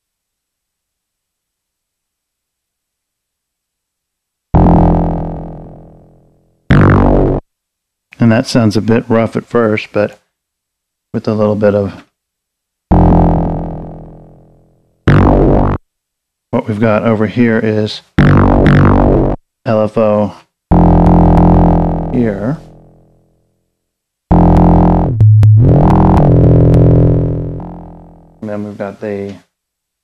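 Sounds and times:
low buzzy synth tone: 0:04.6 - 0:07.4, 0:12.9 - 0:15.8, 0:18.2 - 0:19.4, 0:20.7 - 0:23.3, 0:24.3 - 0:28.5.

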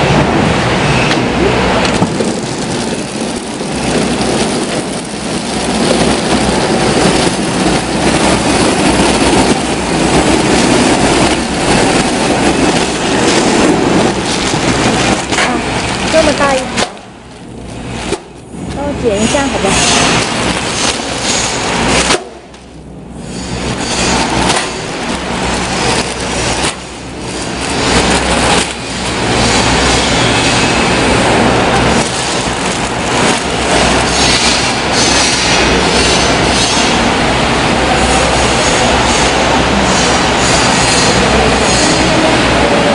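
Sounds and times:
packing machine clatter: 0:01.1 - 0:22.8, 0:23.4 - 0:37.1.

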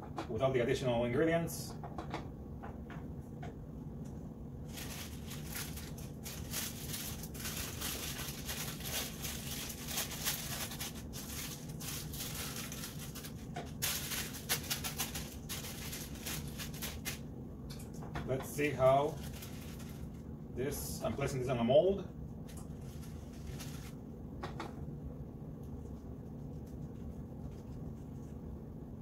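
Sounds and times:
paper rustling and crinkling: 0:04.7 - 0:17.2, 0:19.0 - 0:20.2, 0:22.5 - 0:24.0.

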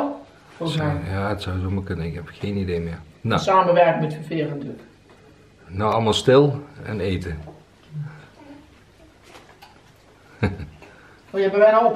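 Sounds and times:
faint eating noises: 0:04.1 - 0:11.9.

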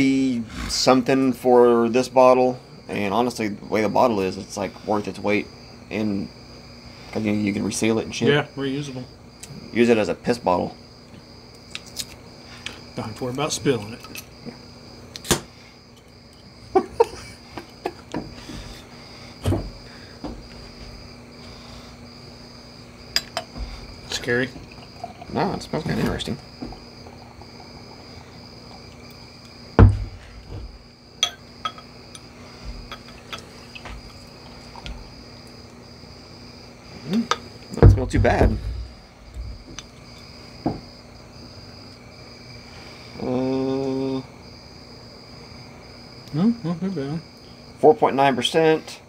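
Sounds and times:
insect chirring: 0:00.0 - 0:49.0
glass bottles clinking: 0:23.2 - 0:27.9, 0:31.2 - 0:31.9, 0:32.8 - 0:34.2
loud thump: 0:29.8 - 0:30.8, 0:37.8 - 0:38.9.

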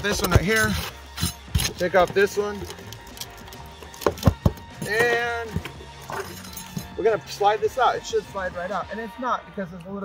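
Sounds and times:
pry bar prying metal: 0:00.0 - 0:05.2.

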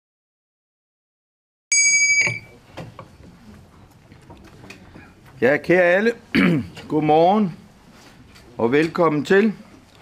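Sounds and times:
brass hand bell ringing: 0:01.7 - 0:02.5.

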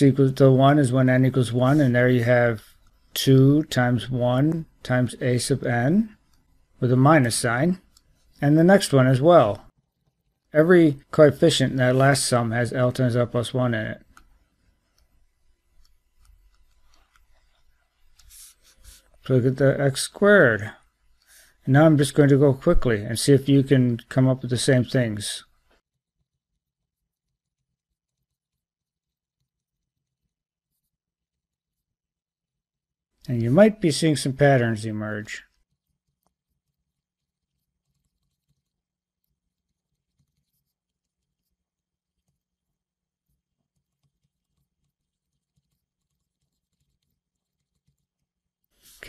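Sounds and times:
stylus tapping and scratching: 0:00.6 - 0:19.8, 0:20.8 - 0:32.3, 0:33.2 - 0:49.0.

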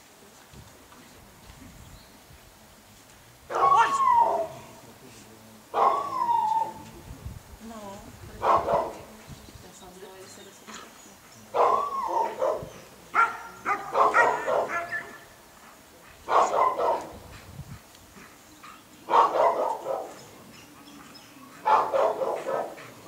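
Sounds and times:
dog barking: 0:03.5 - 0:04.6, 0:05.7 - 0:06.7, 0:08.4 - 0:09.1, 0:11.5 - 0:15.2, 0:16.2 - 0:17.2, 0:19.1 - 0:20.3, 0:21.5 - 0:23.0.

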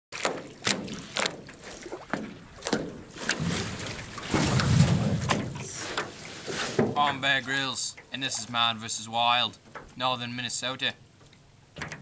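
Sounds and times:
paddle knocks and splashes: 0:00.1 - 0:08.1
rushing water noise: 0:00.1 - 0:09.1.

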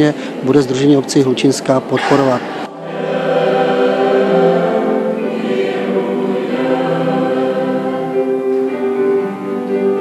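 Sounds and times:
church choir singing: 0:00.7 - 0:10.0.

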